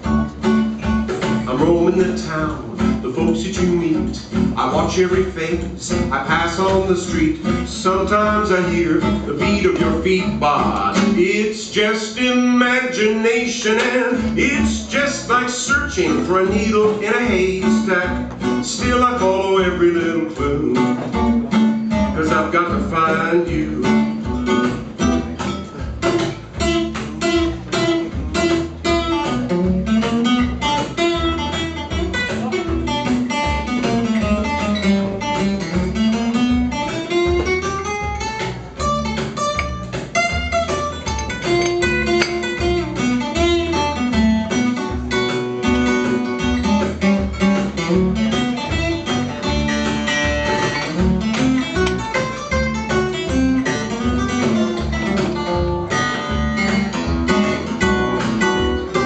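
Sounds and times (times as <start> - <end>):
electric bass line: 0.0 - 11.4, 14.0 - 59.0.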